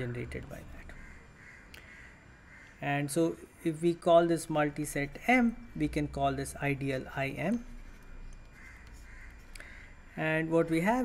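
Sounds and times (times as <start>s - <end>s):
faint animal calls: 8.5s - 10.2s.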